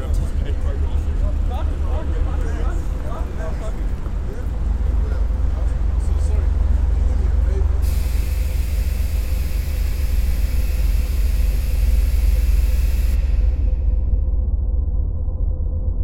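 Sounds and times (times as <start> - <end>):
city street traffic rumble: 0.0 - 15.1
hiss: 7.8 - 14.2.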